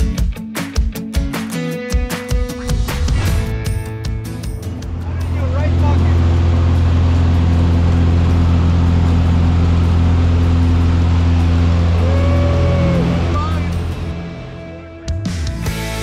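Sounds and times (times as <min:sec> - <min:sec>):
propeller aircraft drone in cabin: 0:04.6 - 0:15.2.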